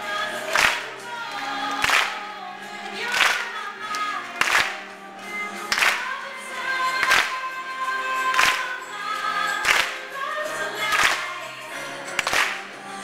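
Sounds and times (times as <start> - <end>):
crowd clapping along: 0.0 - 13.0
live band with singing: 0.0 - 13.0.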